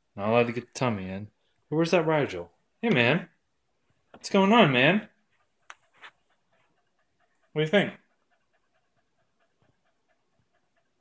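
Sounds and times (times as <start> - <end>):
dog panting: 5.1 - 11.0.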